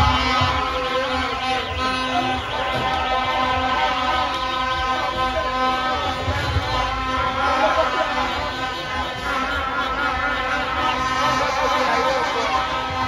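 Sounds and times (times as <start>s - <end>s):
car horns sounding: 0.0s - 13.0s
fans cheering: 0.0s - 13.0s.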